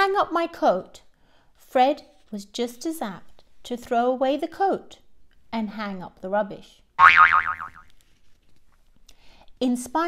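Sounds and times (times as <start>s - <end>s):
cartoon boing: 7.0s - 7.8s.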